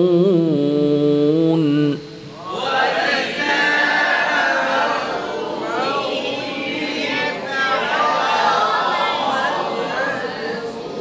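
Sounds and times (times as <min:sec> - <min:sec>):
man reciting: 0:00.0 - 0:02.2
group of voices chanting: 0:02.4 - 0:11.0.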